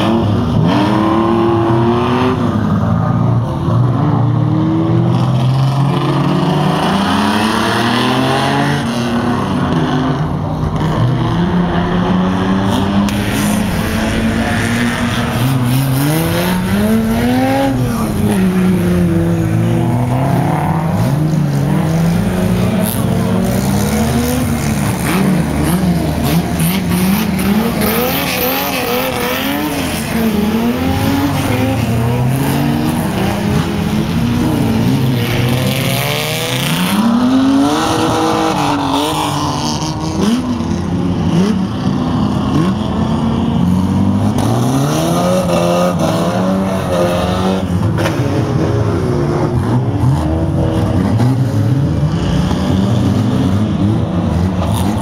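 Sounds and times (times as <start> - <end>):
racing car engines revving: 0.0 - 55.0.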